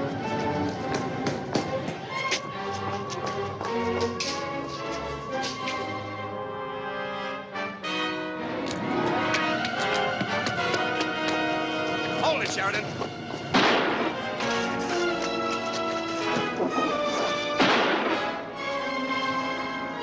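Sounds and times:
tense orchestral film music: 0:00.0 - 0:20.0
loud gunshot: 0:13.5 - 0:14.2, 0:17.6 - 0:18.4.

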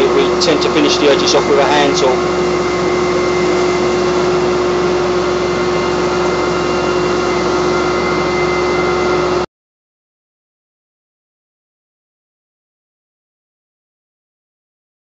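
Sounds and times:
carpet cleaning machine droning: 0:00.0 - 0:09.5.

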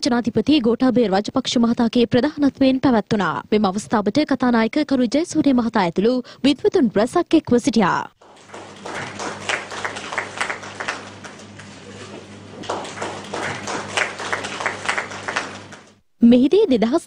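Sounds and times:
small group clapping: 0:08.2 - 0:16.0
steady low hum: 0:08.2 - 0:16.2.

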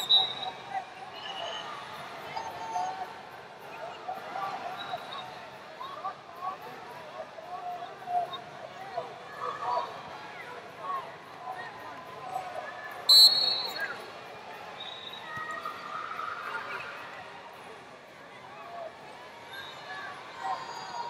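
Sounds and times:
shrill referee's whistle: 0:00.0 - 0:00.6, 0:13.1 - 0:14.1, 0:14.8 - 0:15.3
voices calling out in an arena: 0:00.0 - 0:21.0.

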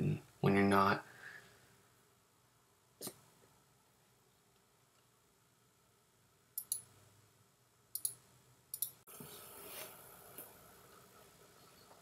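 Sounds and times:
soft hiss: 0:00.0 - 0:12.0.

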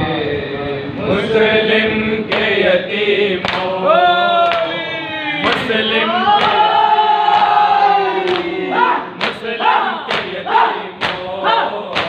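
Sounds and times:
men singing in unison: 0:00.0 - 0:12.0.

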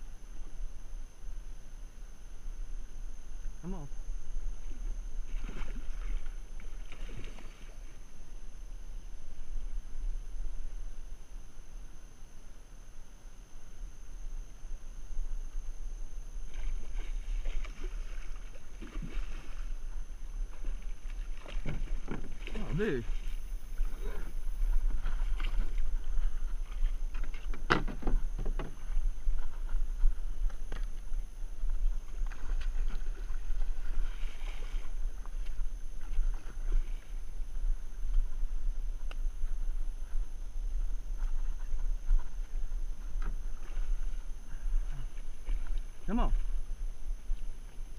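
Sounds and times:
wind rumble on microphone: 0:00.0 - 0:47.9.

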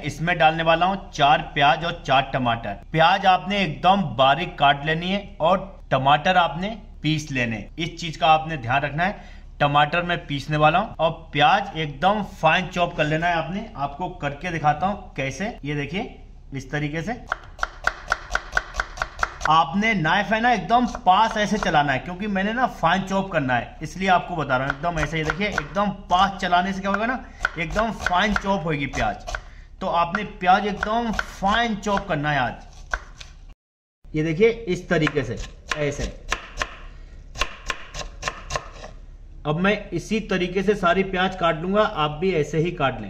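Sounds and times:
knife chopping on wooden board: 0:17.3 - 0:19.6, 0:24.6 - 0:25.8, 0:26.9 - 0:29.5, 0:30.1 - 0:33.4, 0:35.0 - 0:39.0.

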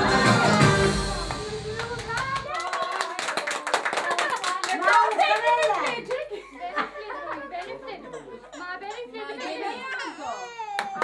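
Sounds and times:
children clapping hands: 0:01.2 - 0:06.3, 0:10.7 - 0:11.0
children's voices chattering: 0:04.2 - 0:11.0.

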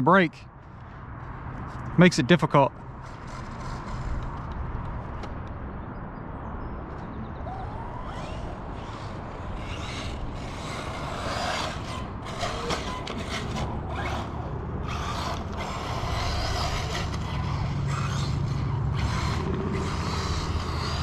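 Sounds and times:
gear noise: 0:00.6 - 0:05.5, 0:06.9 - 0:21.0
electric toy car motor whine: 0:03.0 - 0:04.6, 0:07.4 - 0:21.0
low drone: 0:07.3 - 0:21.0.

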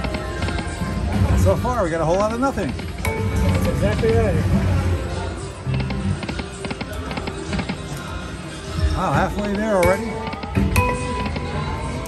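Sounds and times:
slot machine music: 0:00.0 - 0:12.0.

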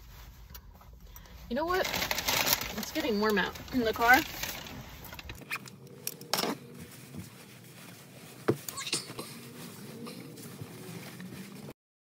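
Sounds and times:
padded jacket fabric rustling: 0:00.0 - 0:11.8.

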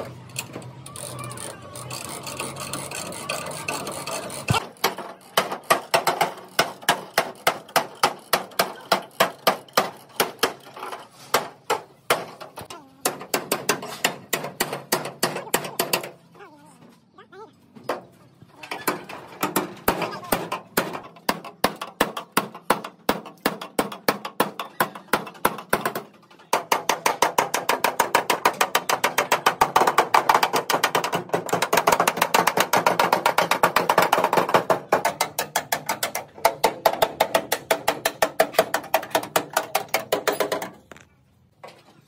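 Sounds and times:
hand hammers striking sheet metal: 0:04.4 - 0:16.2, 0:19.4 - 0:40.8.

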